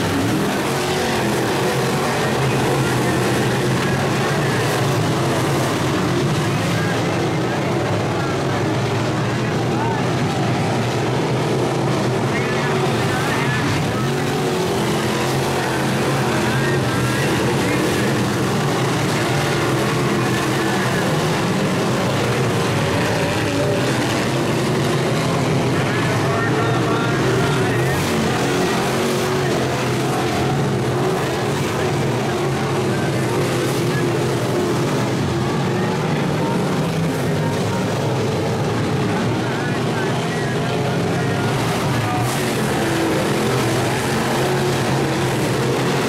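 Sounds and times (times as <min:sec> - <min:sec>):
race car engines running hard: 0:00.0 - 0:46.0.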